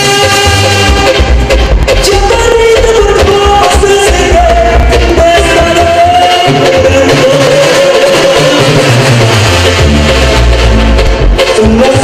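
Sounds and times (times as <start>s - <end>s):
lively regional band music: 0.0s - 12.0s.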